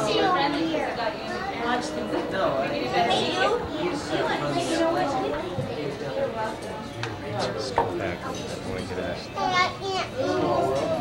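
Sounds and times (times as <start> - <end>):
adults and children chattering: 0.0 - 11.0.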